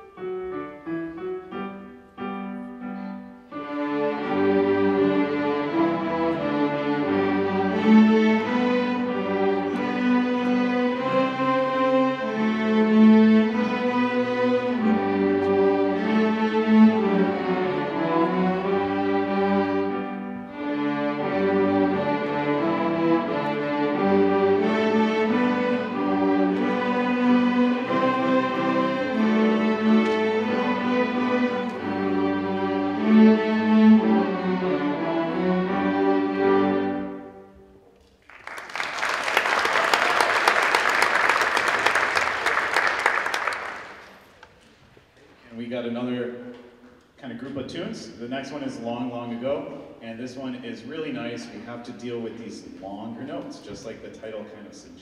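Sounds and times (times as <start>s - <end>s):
string orchestra playing: 0.0s - 37.8s.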